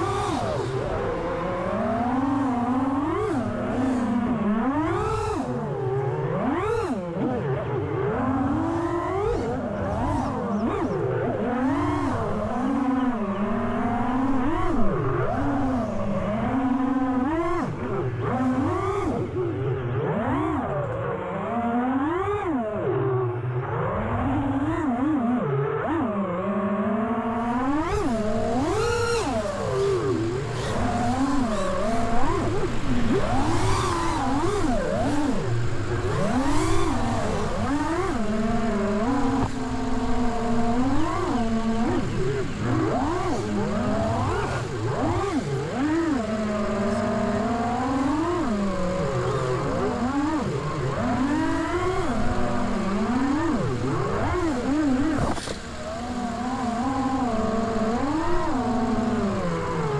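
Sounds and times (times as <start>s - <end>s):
drone motors whining: 0.0s - 59.9s.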